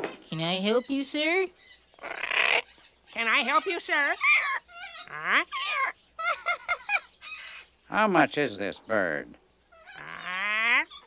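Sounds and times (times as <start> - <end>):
cartoon parrot squawking: 2.0 - 7.6, 9.7 - 11.0.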